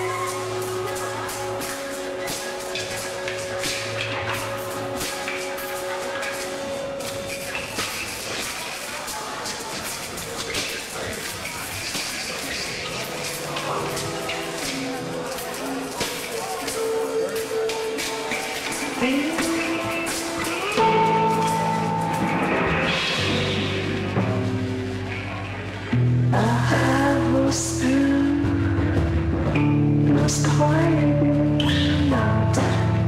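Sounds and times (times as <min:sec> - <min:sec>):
electric guitars sustained notes: 0:00.0 - 0:08.4, 0:12.4 - 0:33.0
person's voice: 0:26.3 - 0:28.8.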